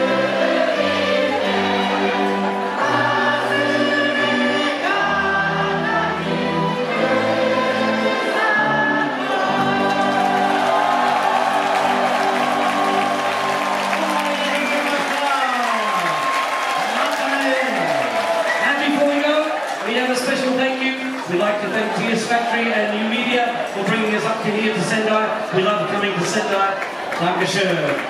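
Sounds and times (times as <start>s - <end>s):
crowd singing loudly: 0.0s - 14.1s
person singing: 0.0s - 14.1s
keyboard playing held chords: 0.0s - 15.4s.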